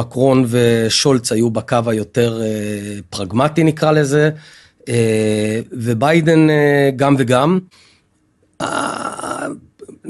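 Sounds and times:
man breathing: 4.4 - 4.8, 7.7 - 8.1.

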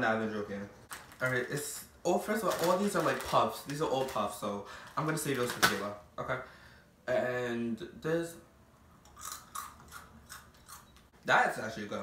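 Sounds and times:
person chewing crunchy candy: 9.1 - 11.0.

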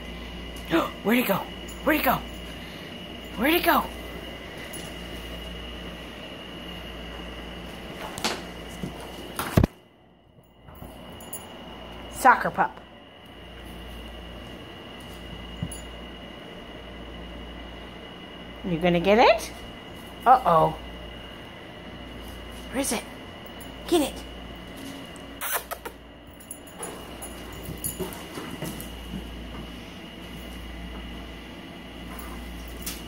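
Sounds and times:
faint high whine: 0.0 - 33.0
room hum: 0.0 - 33.0.

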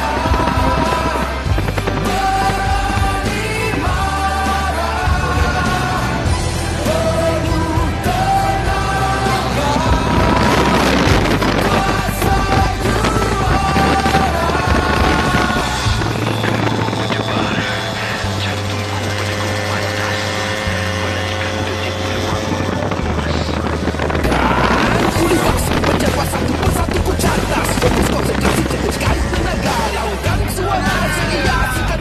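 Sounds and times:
instrumental music with bass line: 0.0 - 32.0.

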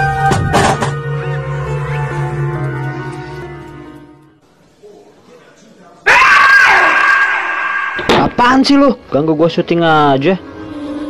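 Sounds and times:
loud startled scream: 6.0 - 8.5.

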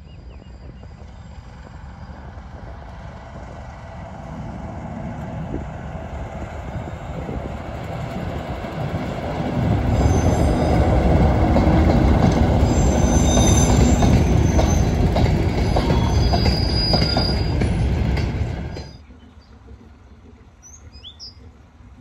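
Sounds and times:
diesel locomotive engine rumble: 0.0 - 22.0
wheels clicking over rail joints: 7.2 - 22.0
high wheel squeals: 9.9 - 11.4, 12.4 - 17.8.

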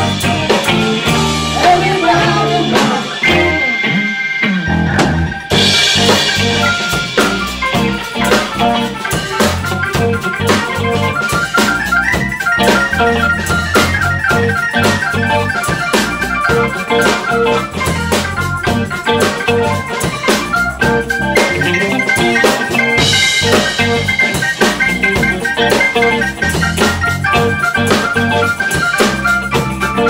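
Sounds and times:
live band with electronic organ: 0.0 - 30.0.

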